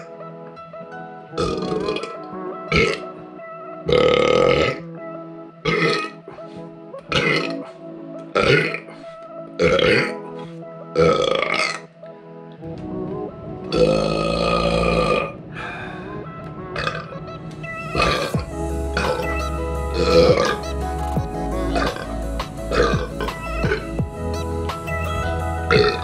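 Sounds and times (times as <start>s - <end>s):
background music: 0.0s - 26.0s
man burping: 1.4s - 3.1s, 3.9s - 4.9s, 5.6s - 6.2s, 7.1s - 7.7s, 8.3s - 9.0s, 9.6s - 10.2s, 11.0s - 11.9s, 13.7s - 15.4s, 16.8s - 17.1s, 18.0s - 18.4s, 20.0s - 20.8s, 22.7s - 23.9s.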